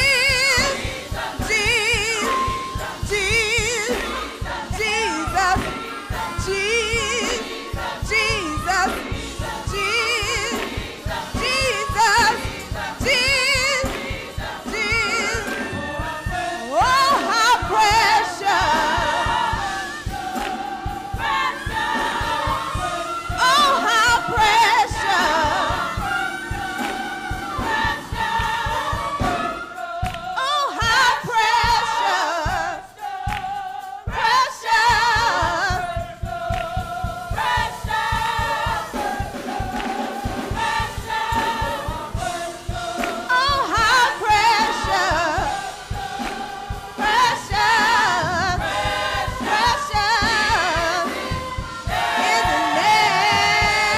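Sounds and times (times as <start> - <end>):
woman singing: 0.0 - 20.5, 21.1 - 26.6, 27.4 - 32.9, 34.0 - 39.7, 40.5 - 46.0, 46.9 - 53.9
choir singing: 0.0 - 53.9
steady beat: 0.0 - 53.9.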